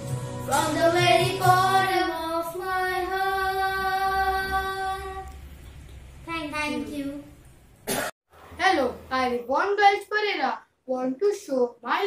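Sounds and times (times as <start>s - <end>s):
girl singing: 0.5s - 5.4s
boy speaking: 6.3s - 7.3s, 8.6s - 12.0s
short cough: 7.9s - 8.2s.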